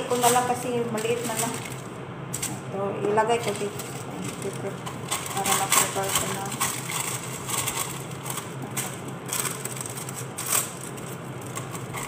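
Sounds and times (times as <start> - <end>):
paper rustling and crinkling: 0.0 - 2.6, 3.4 - 12.0.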